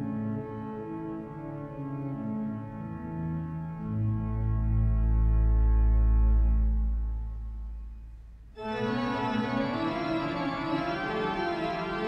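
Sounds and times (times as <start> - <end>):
pipe organ low chords: 0.0 - 12.0.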